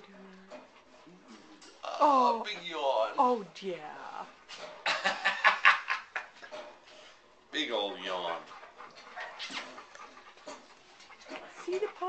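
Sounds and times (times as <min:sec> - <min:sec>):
puppy panting and snuffling: 0:00.5 - 0:01.6, 0:02.3 - 0:03.4, 0:07.9 - 0:12.0.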